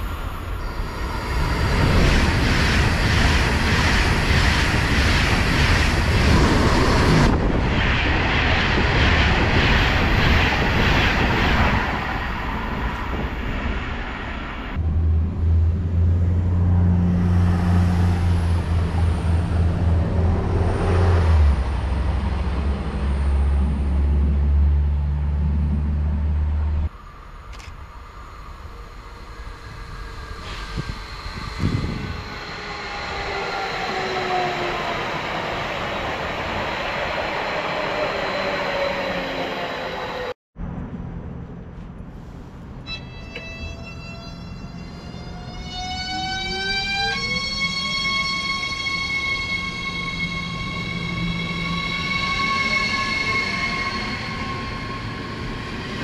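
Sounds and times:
high-speed train passing: 0.0 - 56.0
faint falling whines: 42.8 - 56.0.

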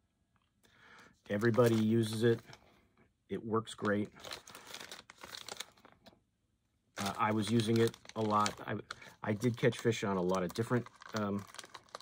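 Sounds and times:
plastic packages crinkling: 1.3 - 2.6, 3.8 - 6.1, 7.0 - 12.0.

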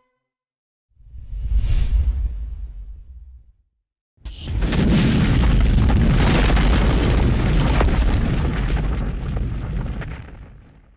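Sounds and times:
crackling debris: 4.3 - 10.9
heavy boom and rumble: 4.3 - 10.9.

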